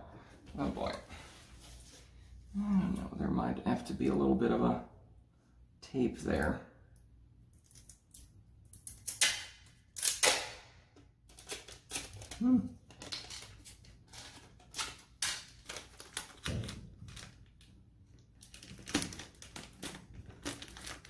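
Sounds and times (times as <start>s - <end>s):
tape ripping off a roll: 7.7s - 17.7s, 18.3s - 21.0s
foil crinkling: 11.3s - 21.0s.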